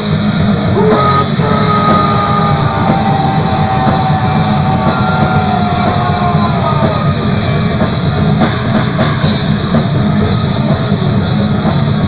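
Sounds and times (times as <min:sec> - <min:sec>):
drums: 0:00.0 - 0:12.0
electric guitars: 0:00.0 - 0:12.0.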